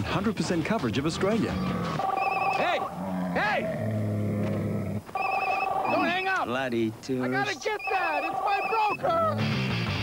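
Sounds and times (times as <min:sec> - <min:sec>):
phone trilling ring: 0:02.0 - 0:02.9, 0:05.1 - 0:06.4, 0:07.3 - 0:09.1
camel groaning: 0:02.6 - 0:05.1.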